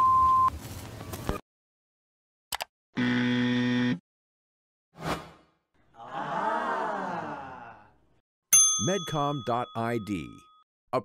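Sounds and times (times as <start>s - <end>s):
electronic buzzer tone: 3.0s - 4.0s.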